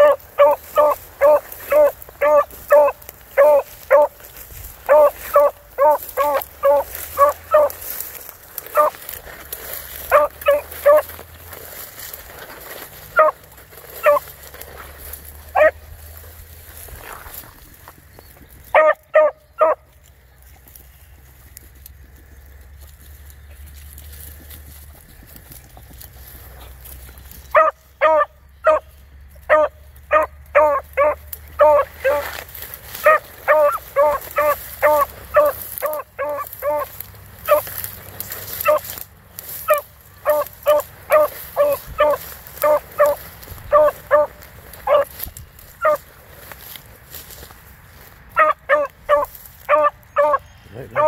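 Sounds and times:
dog barking in short yelps: 0:00.0 - 0:04.2, 0:04.9 - 0:07.8, 0:08.7 - 0:08.9, 0:10.1 - 0:11.0, 0:15.6 - 0:15.8, 0:18.7 - 0:19.8, 0:27.6 - 0:28.8, 0:29.5 - 0:32.2, 0:33.0 - 0:36.9, 0:48.4 - 0:50.4.

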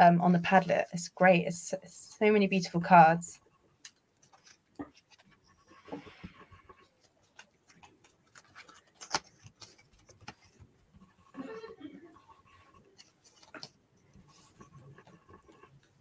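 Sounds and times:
paper rustling: 0:03.8 - 0:11.3, 0:12.2 - 0:16.0.

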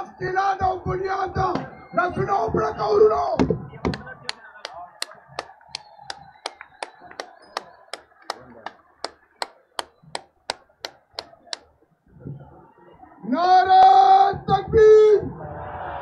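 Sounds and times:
faint crowd murmur: 0:03.5 - 0:13.6
rhythmic hand claps: 0:03.9 - 0:11.6.

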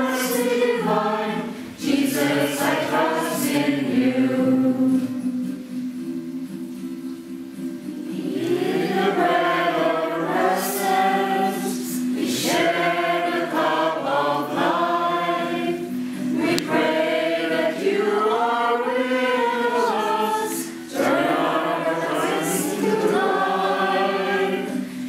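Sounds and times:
congregation singing a hymn: 0:00.0 - 0:05.3, 0:08.1 - 0:25.0.

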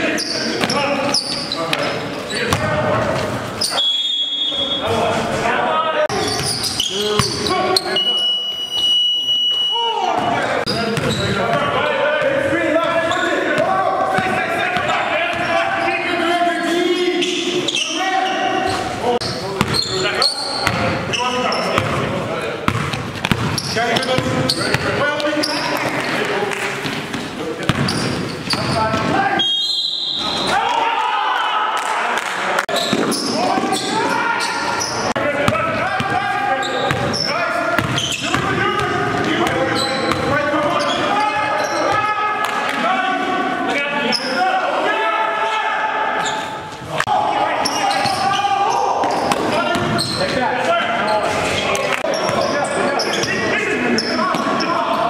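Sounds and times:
echoing voices: 0:00.0 - 0:55.0
basketball dribbling on gym floor: 0:22.7 - 0:24.9.

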